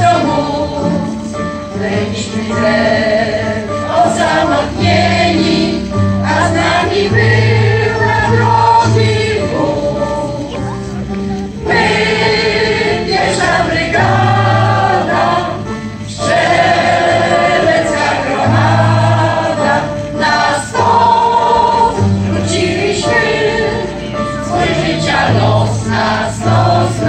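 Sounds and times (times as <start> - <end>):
choir singing: 0.0 - 10.6, 11.5 - 27.0
electronic keyboard accompaniment: 0.0 - 27.0.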